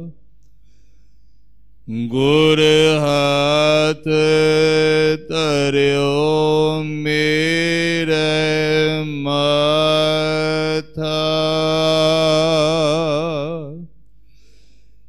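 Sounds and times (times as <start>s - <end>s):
man breathing: 0.4s - 1.7s, 14.1s - 15.0s
man chanting melodically: 1.9s - 13.9s.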